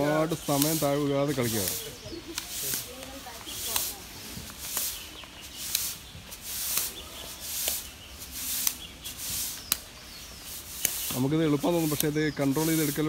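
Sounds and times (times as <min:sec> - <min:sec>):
short hissing swish: 0:00.4 - 0:13.0.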